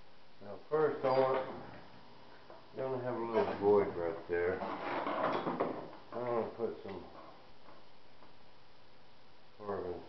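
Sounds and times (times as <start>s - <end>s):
person speaking: 2.7s - 4.7s, 6.1s - 7.2s.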